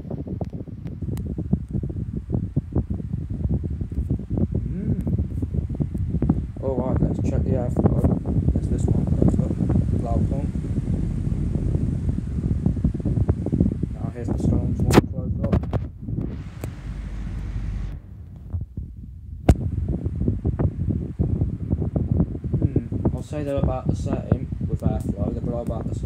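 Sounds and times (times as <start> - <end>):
fans buffeting microphone: 0.0 - 26.0.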